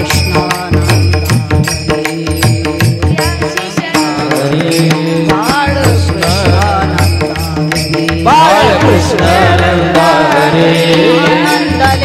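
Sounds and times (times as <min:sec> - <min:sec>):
women chanting: 0:08.3 - 0:12.0.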